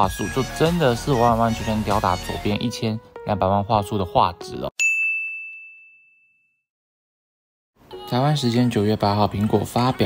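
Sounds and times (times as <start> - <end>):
bell-like ding chime: 4.8 - 6.6.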